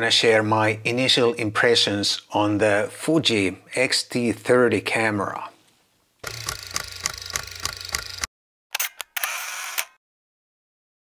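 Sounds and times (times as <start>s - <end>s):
camera shutter click: 6.2s - 10.0s
mechanical clicks: 6.2s - 10.0s.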